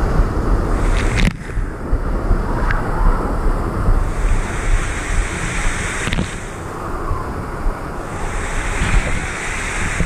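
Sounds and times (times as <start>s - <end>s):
water rushing along waterslide: 0.0s - 10.0s
wind on microphone: 0.0s - 10.0s.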